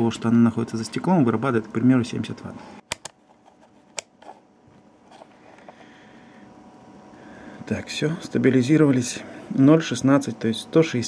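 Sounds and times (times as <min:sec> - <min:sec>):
multimeter dial clicking: 0:02.9 - 0:03.2.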